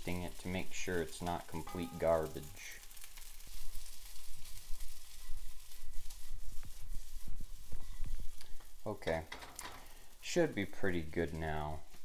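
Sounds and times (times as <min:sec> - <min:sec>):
rice sizzling in a frying pan: 0:00.0 - 0:12.0.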